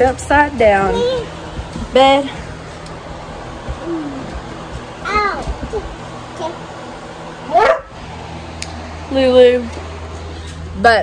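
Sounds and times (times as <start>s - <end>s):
dog barking: 7.5s - 8.0s.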